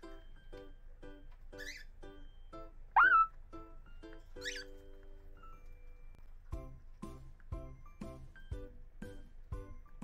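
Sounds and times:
cockatiel squawking: 0:03.0 - 0:03.4, 0:04.4 - 0:04.7.

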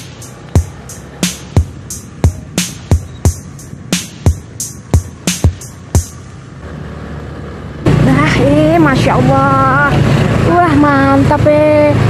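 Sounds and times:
sharp drum hits: 0:00.0 - 0:06.2
background music: 0:00.0 - 0:06.6
motorcycle engine: 0:00.0 - 0:12.0
person talking: 0:07.9 - 0:12.0.

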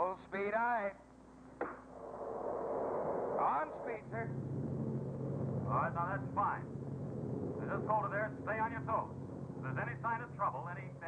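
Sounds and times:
low steady hum: 0:00.0 - 0:11.0
rocket engine roar: 0:01.6 - 0:11.0.

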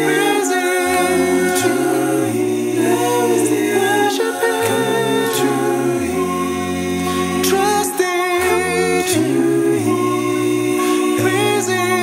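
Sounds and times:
male a cappella group singing: 0:00.0 - 0:12.0.

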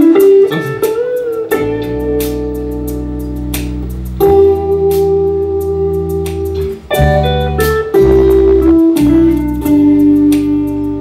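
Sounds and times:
drums with cymbal hits: 0:00.0 - 0:11.0
electric guitar chords: 0:00.0 - 0:11.0.

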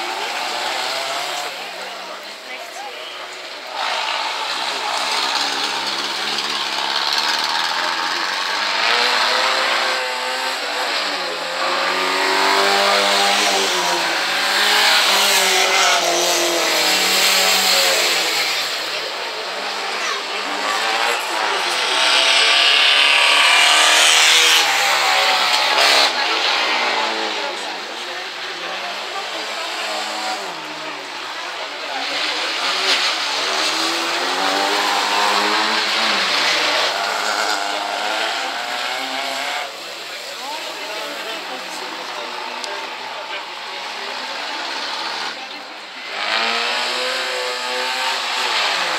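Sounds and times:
race car engine revving hard: 0:00.0 - 0:48.9.

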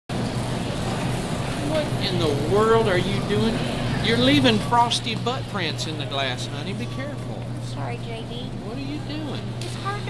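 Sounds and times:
refrigerated cases humming: 0:00.1 - 0:10.0.

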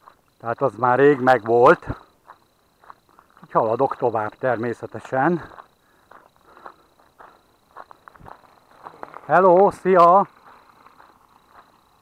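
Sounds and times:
footsteps on gravel: 0:00.0 - 0:04.3, 0:05.0 - 0:12.0.

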